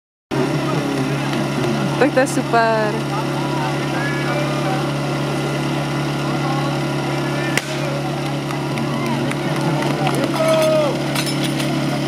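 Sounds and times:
pump engine idling: 0.3s - 12.0s
sharp crack: 7.5s - 8.4s.

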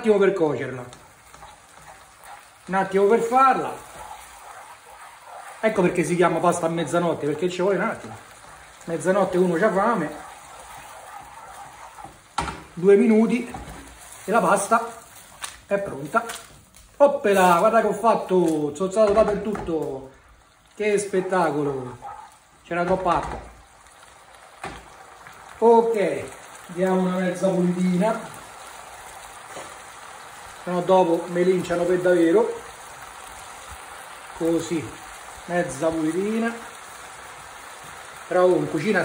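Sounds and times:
pasta sizzling in a frying pan: 0.0s - 39.0s.

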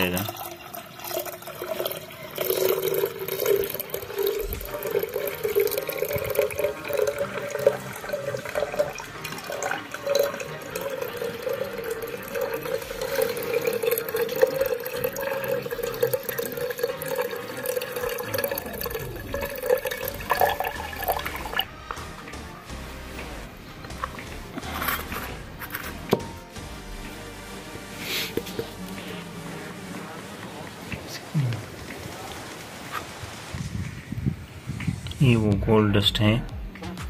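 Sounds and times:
liquid pouring into glass jug: 0.0s - 21.8s.

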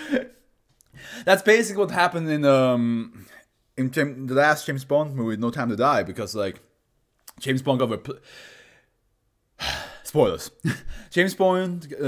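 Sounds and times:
man sighing: 9.6s - 10.1s.

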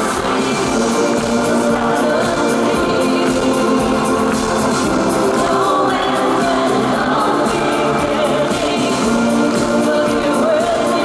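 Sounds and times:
band playing: 0.0s - 11.0s
gospel-style backing vocals: 0.0s - 11.0s
woman singing: 0.0s - 11.0s.

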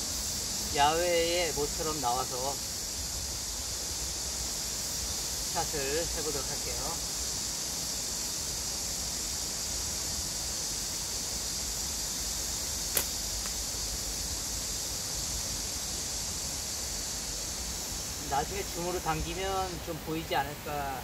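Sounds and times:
high outdoor hiss: 0.0s - 21.0s
slingshot band snap: 12.9s - 13.6s.

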